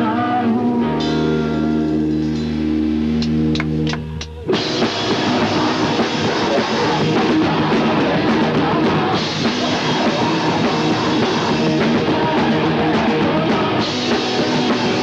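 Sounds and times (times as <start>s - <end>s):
loud band with drums and distorted guitars: 0.0s - 15.0s.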